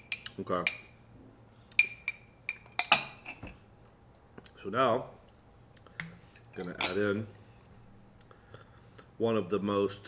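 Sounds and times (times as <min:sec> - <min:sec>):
cutlery clinking against glass: 0:01.8 - 0:03.5, 0:06.6 - 0:07.1.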